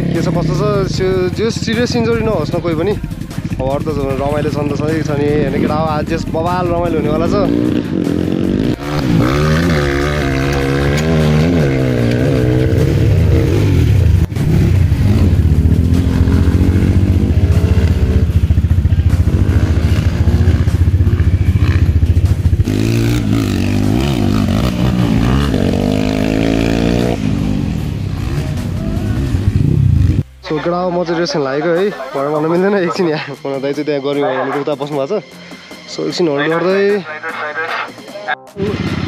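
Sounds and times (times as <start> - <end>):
dirt bike engines revving: 0.0 - 39.0.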